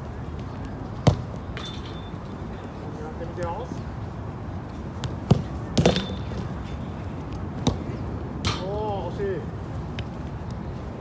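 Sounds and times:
ball striking metal goal post: 0:05.8 - 0:06.3.

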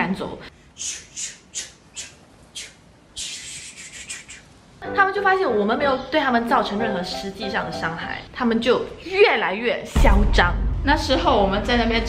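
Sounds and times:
person shushing: 0:00.8 - 0:04.5.

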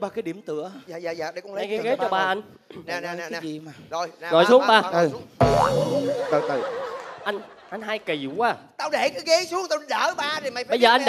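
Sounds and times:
cartoon spring boing: 0:05.4 - 0:06.6.

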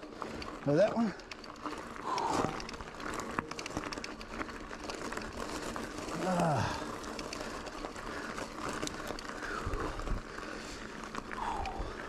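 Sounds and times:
bike rattle: 0:00.0 - 0:12.0
bike tyres crunching on gravel: 0:00.0 - 0:12.0.

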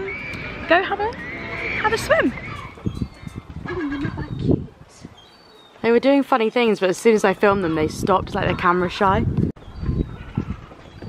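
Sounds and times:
gull calling: 0:00.0 - 0:04.6
wind buffeting microphone: 0:00.0 - 0:11.0.

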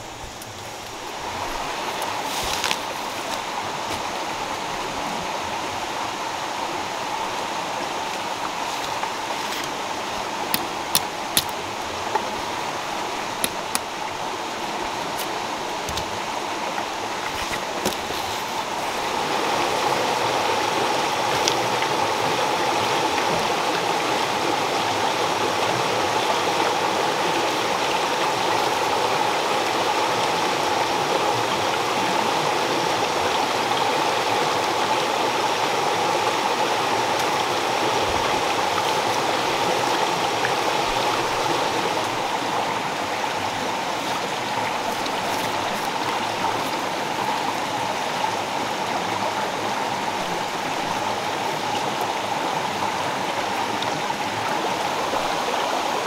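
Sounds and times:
forest stream rushing: 0:00.0 - 0:56.0.

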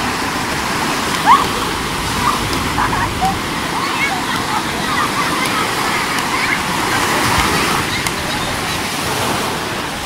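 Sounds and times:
surf breaking on beach: 0:00.0 - 0:10.0
bathers shouting and squealing: 0:01.2 - 0:07.1.

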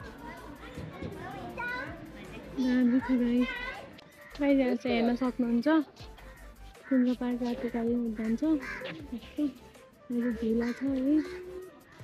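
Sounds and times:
children chattering: 0:00.0 - 0:05.8.

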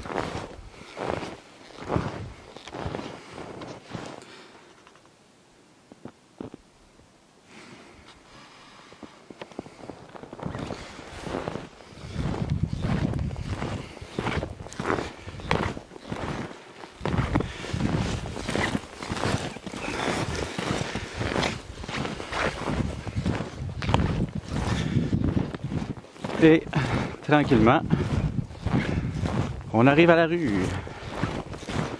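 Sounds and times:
footsteps in snow: 0:00.0 - 0:05.0, 0:07.9 - 0:31.9.

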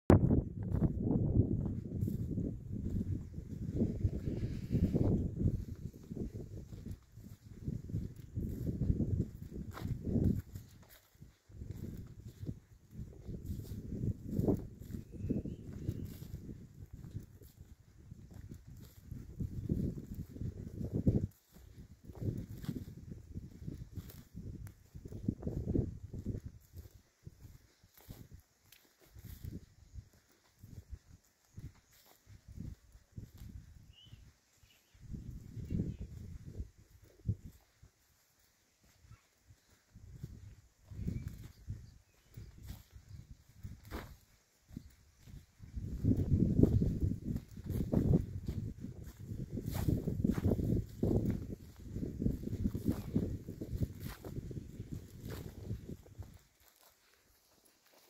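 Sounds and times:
wind buffeting microphone: 0:00.1 - 0:28.4, 0:29.1 - 0:34.3, 0:34.9 - 0:37.8, 0:39.1 - 0:56.4
footsteps on dry grass: 0:00.2 - 0:58.0.

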